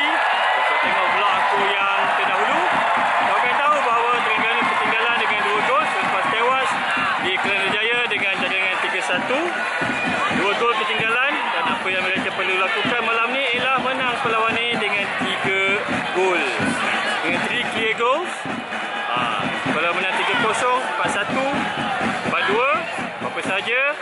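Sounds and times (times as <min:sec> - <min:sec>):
man talking: 0:00.0 - 0:02.7, 0:03.3 - 0:09.6, 0:10.4 - 0:18.3, 0:19.1 - 0:21.6, 0:22.3 - 0:24.0
stadium crowd noise: 0:00.0 - 0:24.0.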